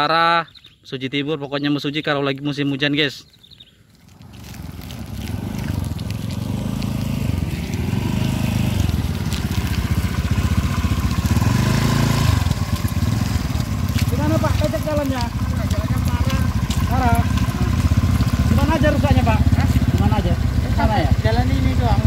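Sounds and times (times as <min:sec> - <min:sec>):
small motorcycle engines rumbling: 0:03.7 - 0:22.0.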